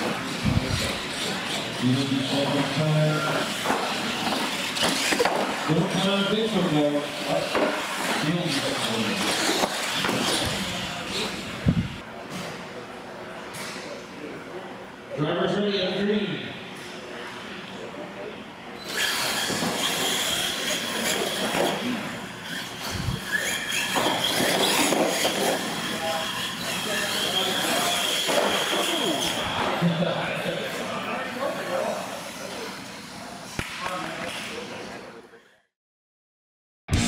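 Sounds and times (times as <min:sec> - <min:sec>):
rc trucks motors whining: 0:00.0 - 0:12.0, 0:18.8 - 0:29.7.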